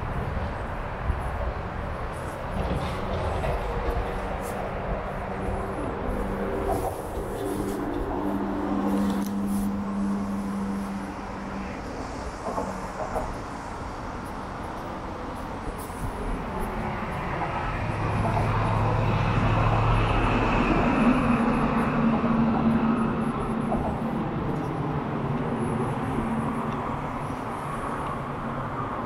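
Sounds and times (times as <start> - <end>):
large vehicle passing by: 0.0 - 29.0.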